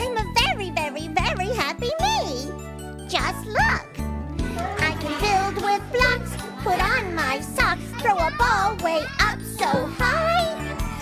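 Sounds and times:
backing music: 0.0s - 11.0s
childlike voice singing: 4.6s - 11.0s.

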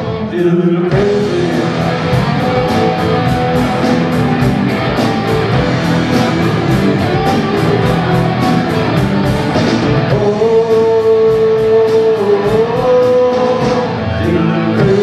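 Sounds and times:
guitars: 0.0s - 15.0s
live rock band playing: 0.0s - 15.0s
drum kit cymbal beat: 0.9s - 15.0s.

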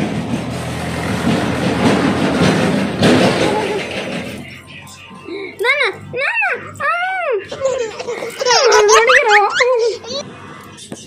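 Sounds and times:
high-pitched laughter: 6.8s - 10.2s.

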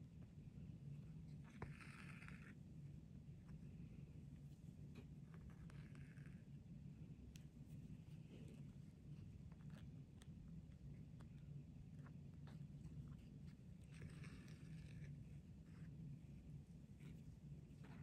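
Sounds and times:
faint room hum: 0.0s - 18.0s.

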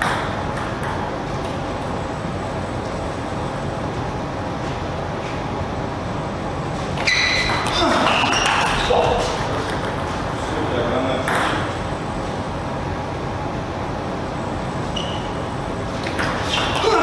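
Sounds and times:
shoes squeaking on floor: 6.9s - 9.5s, 14.8s - 17.0s.

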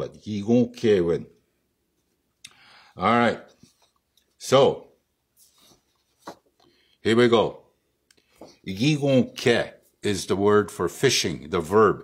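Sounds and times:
soft brushes: 5.3s - 6.5s
paper rustling: 5.4s - 6.5s.

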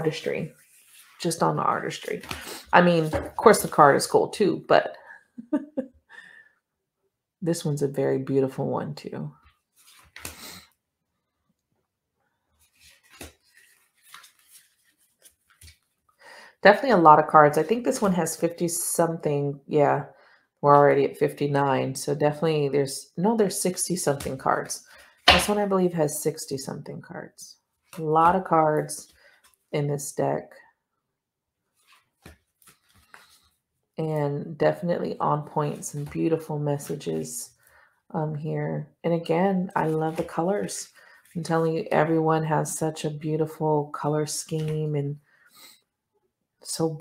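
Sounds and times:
cards rustling and tapping on table: 12.8s - 15.9s, 31.8s - 33.4s
cards tapping and rustling: 31.8s - 33.4s.

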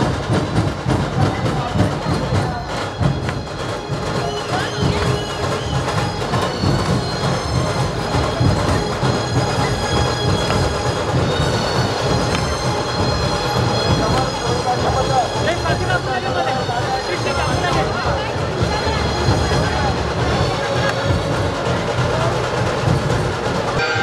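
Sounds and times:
cymbals ringing: 0.0s - 24.0s
deep procession drumbeats: 0.0s - 24.0s.

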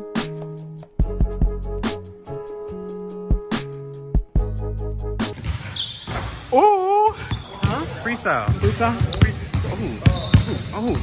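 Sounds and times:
background music: 0.0s - 5.8s.

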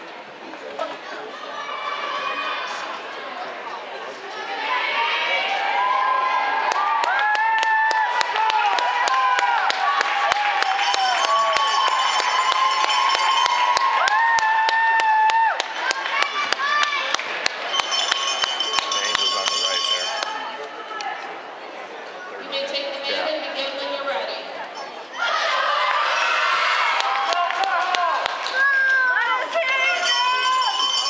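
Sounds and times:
girls shouting and cheering: 4.5s - 17.2s, 25.2s - 31.0s.

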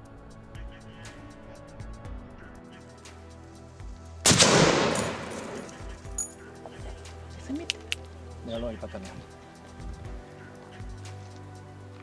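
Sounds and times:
rifle shot echoing: 4.2s - 6.0s.

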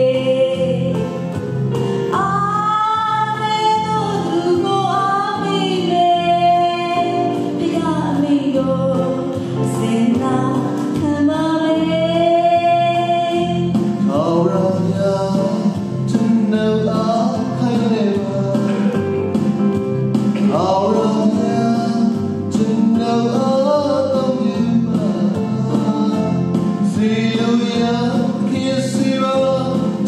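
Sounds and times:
woman singing into a microphone: 0.0s - 1.2s, 2.1s - 14.0s
instrumental backing: 0.0s - 30.0s.

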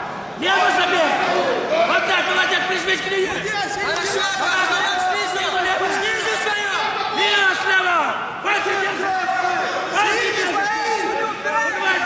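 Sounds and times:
spectators chatter in echoing hall: 0.0s - 12.0s.

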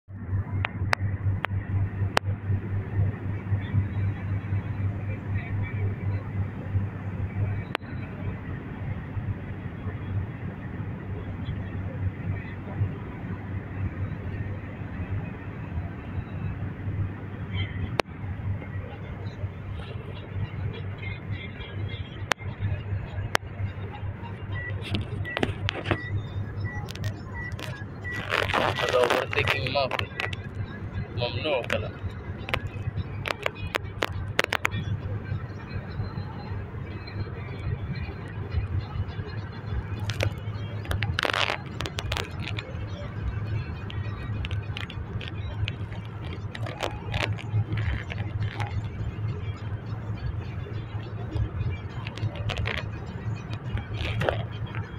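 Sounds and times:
car road and engine rumble: 0.0s - 54.9s.

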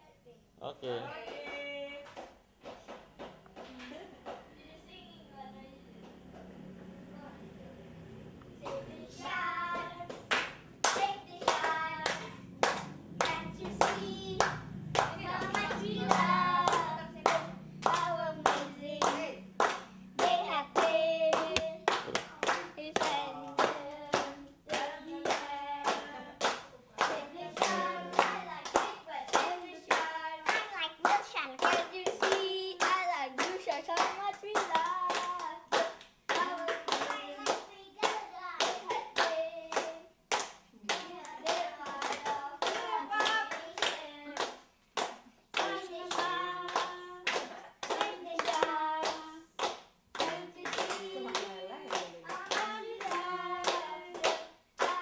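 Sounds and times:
group of people singing: 8.6s - 40.2s, 40.8s - 44.7s, 45.5s - 55.0s
people clapping in time: 8.6s - 55.0s.

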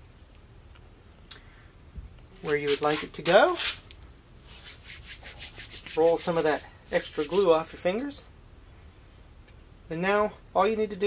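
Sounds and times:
fingers rubbing tacky glue: 4.4s - 7.5s.

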